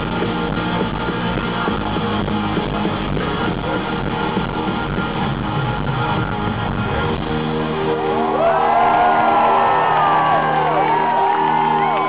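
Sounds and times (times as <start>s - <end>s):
live rock band chord: 0.0s - 8.4s
fans screaming and whooping: 0.2s - 12.0s.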